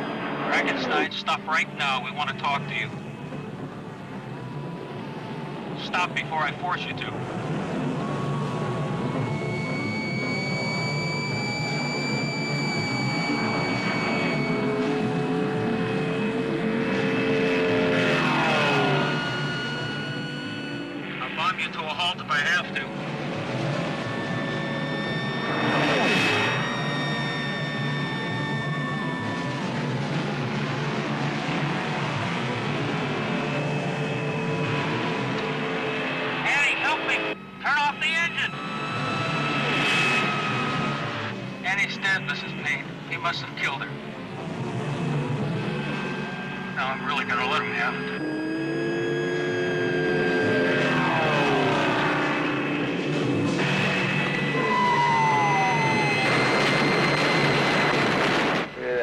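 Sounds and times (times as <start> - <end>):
car engines racing: 0.0 - 59.0.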